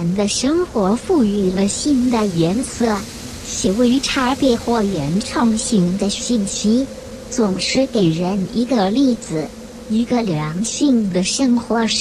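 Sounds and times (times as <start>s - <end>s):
faint steady hum: 0.0s - 12.0s
person narrating: 0.0s - 12.0s.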